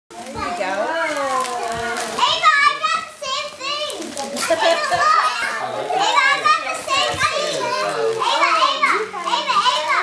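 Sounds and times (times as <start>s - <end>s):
children calling: 0.2s - 10.0s.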